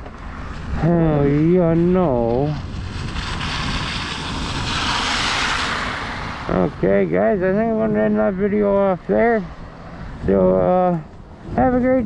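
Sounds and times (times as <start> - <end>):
wind rumbling on microphone: 0.0 - 12.0
car tyres hissing on wet road: 0.3 - 6.5.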